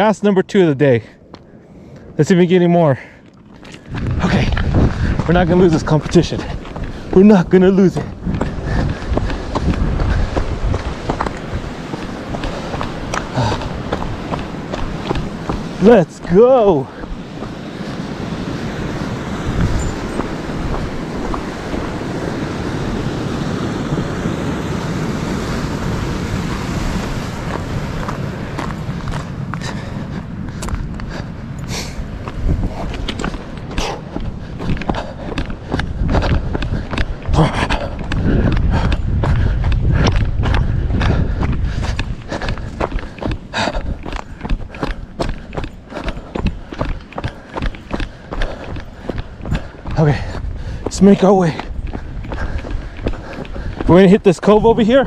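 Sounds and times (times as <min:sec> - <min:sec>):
footsteps on loose stone: 0:03.2 - 0:22.1, 0:26.9 - 0:31.3, 0:32.0 - 0:55.0
wind rumble on microphone: 0:03.4 - 0:55.0.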